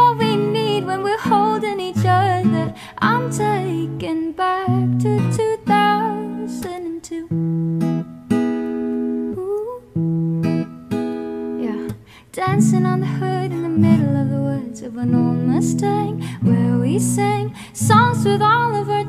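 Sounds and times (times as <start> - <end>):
person singing: 0.0 - 7.3, 9.3 - 9.9, 11.6 - 19.0
acoustic guitar strumming: 0.0 - 19.0.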